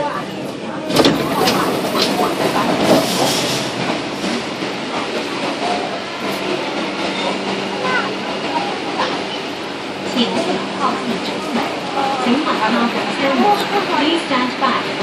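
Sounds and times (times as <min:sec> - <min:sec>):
faint voices: 0:00.0 - 0:15.0
train equipment hum: 0:00.0 - 0:15.0
passengers moving rustle: 0:00.4 - 0:05.6, 0:10.0 - 0:14.8.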